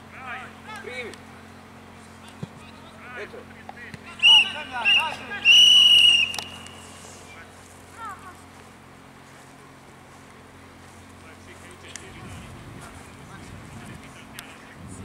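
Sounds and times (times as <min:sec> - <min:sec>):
players' voices calling: 0:00.0 - 0:14.8
referee's whistle: 0:04.1 - 0:07.0.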